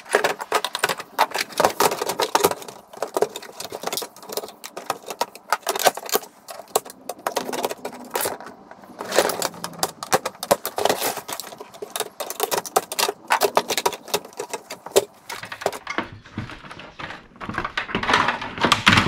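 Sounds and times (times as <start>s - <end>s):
plastic and metal parts rattling: 0.0s - 19.0s.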